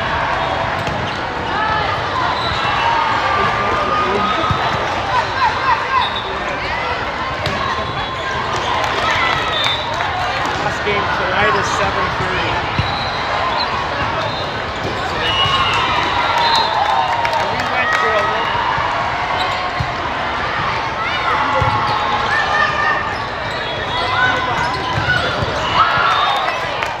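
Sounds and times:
players calling and crowd voices: 0.0 - 27.0
sneakers squeaking on court: 0.4 - 1.4, 12.6 - 15.8, 22.8 - 26.2.

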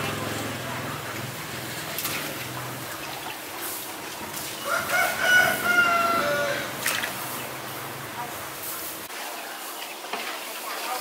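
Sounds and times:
faint water splashing: 0.0 - 11.0
rooster crowing: 4.6 - 6.8.

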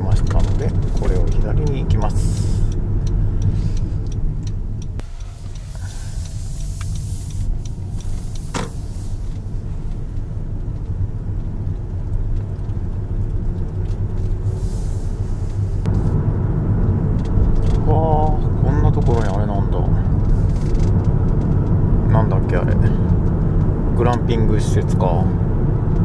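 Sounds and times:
road and tyre rumble in car: 0.0 - 26.0.

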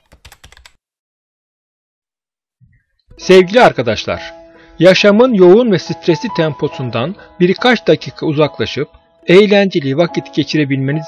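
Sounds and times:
computer keyboard typing: 0.0 - 0.8.

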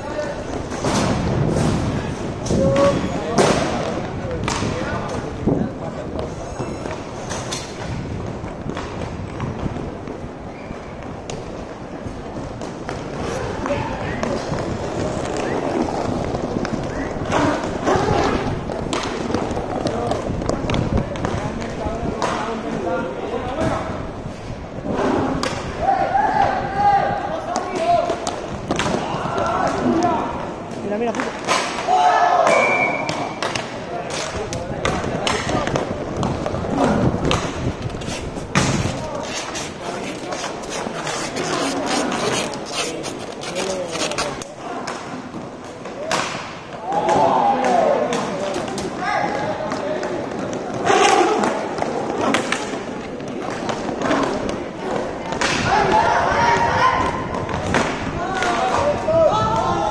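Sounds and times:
hockey sticks and puck clacking: 2.4 - 5.3, 6.0 - 22.9, 24.9 - 25.8, 27.4 - 59.9.

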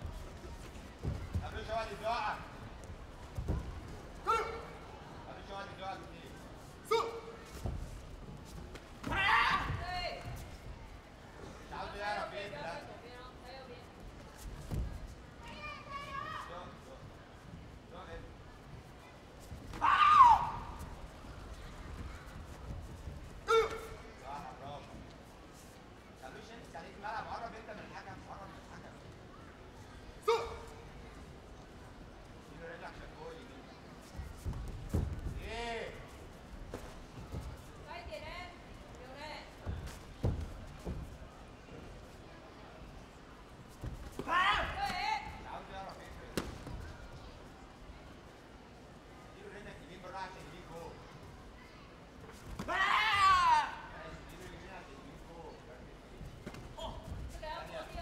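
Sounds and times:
person yelling sharply: 6.9 - 7.3, 30.3 - 30.7.

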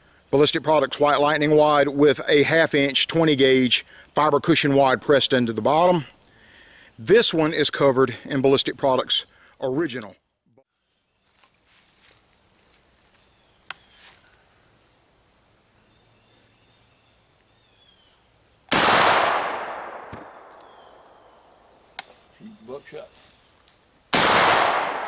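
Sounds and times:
echo through woods: 15.7 - 23.4, 24.1 - 25.0
shotgun blasts: 18.7 - 21.2, 24.1 - 25.0.

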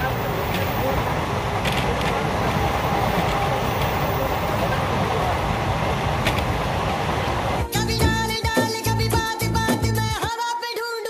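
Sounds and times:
rushing air: 0.0 - 7.7
train running rumble: 0.0 - 7.7.

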